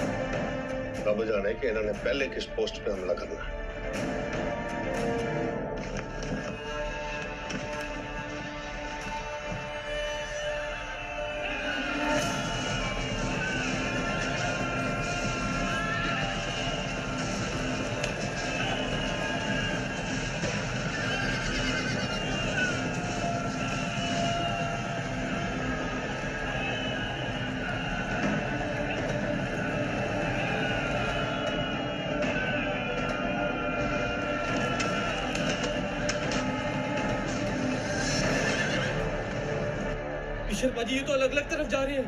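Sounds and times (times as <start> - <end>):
background music: 0.0 - 42.0
horses galloping: 13.8 - 24.6, 33.9 - 39.1
horses whinnying: 20.5 - 24.2, 37.9 - 39.2.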